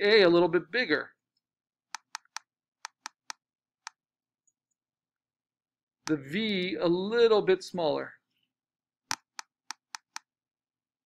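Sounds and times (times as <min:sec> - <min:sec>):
computer mouse clicks: 0:01.9 - 0:04.0, 0:09.1 - 0:10.3.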